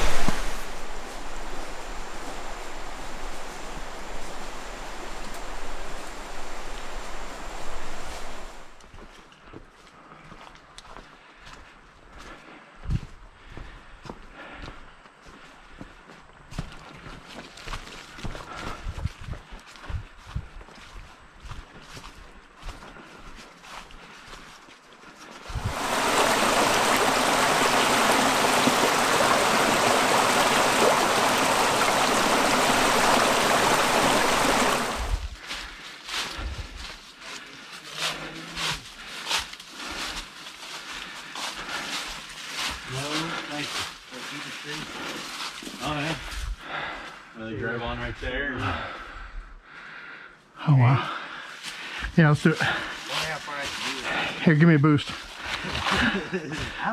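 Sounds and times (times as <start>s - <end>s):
small waterfall rushing: 0.0s - 8.8s, 25.5s - 35.3s
footsteps crunching on rocky trail: 8.7s - 25.8s, 35.0s - 47.2s, 51.2s - 54.4s, 55.0s - 56.9s.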